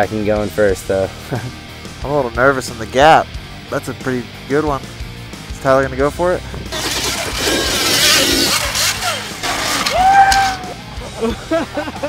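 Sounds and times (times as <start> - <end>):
tyres on loose dirt: 6.6 - 11.9
electric motor whine: 6.7 - 10.0.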